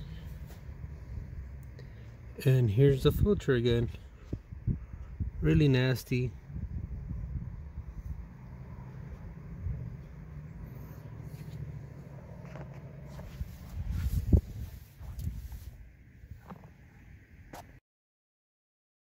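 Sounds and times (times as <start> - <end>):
low steady rumble: 0.0 - 17.5.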